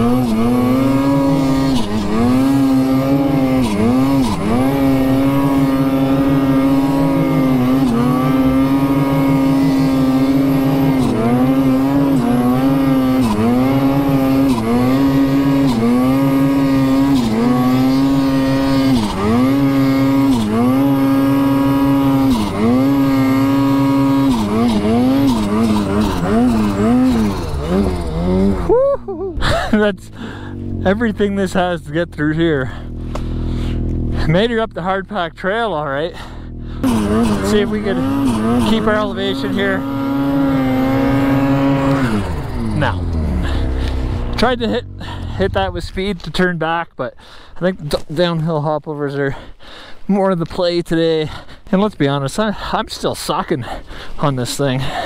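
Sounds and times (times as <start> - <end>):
snowmobile engine high revs: 0.0 - 49.5.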